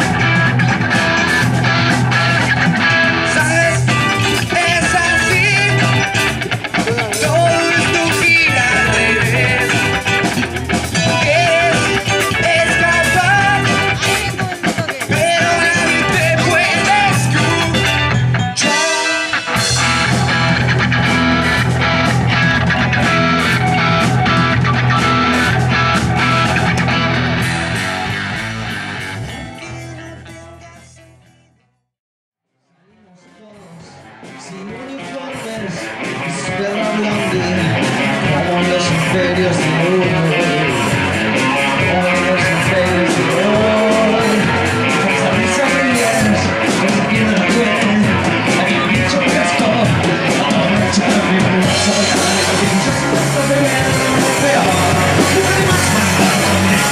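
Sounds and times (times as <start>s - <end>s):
drum kit: 0.0s - 30.9s, 34.2s - 56.9s
electric guitar: 0.0s - 31.3s, 33.6s - 56.9s
rock band playing: 0.0s - 31.4s, 33.2s - 56.9s.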